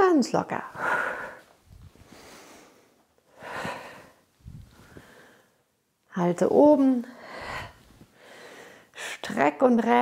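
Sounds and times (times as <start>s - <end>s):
woman breathing out: 0.8s - 5.6s, 7.2s - 9.2s.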